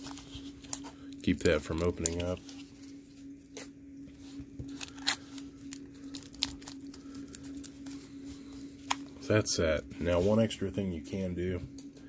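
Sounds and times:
steady low hum: 0:00.0 - 0:12.0
adhesive tape crackling: 0:04.7 - 0:09.0.

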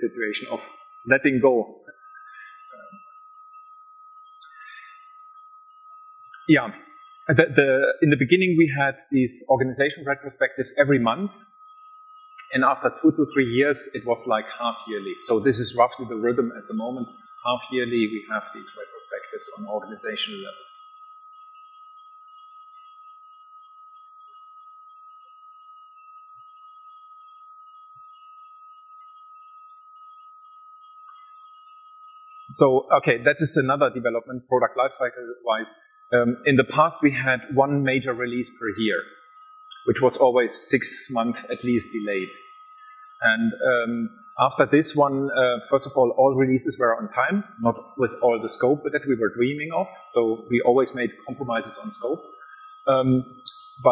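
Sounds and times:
faint high-pitched tone: 0:00.0 - 0:53.9.

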